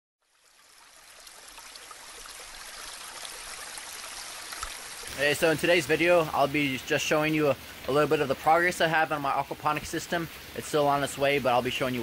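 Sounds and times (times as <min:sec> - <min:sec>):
water running and trickling: 0:00.2 - 0:12.0.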